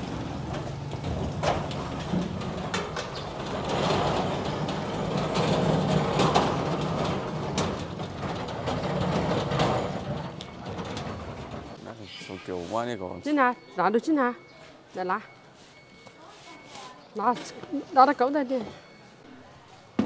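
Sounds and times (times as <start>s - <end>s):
cabinet rolling over concrete: 0.0s - 11.8s.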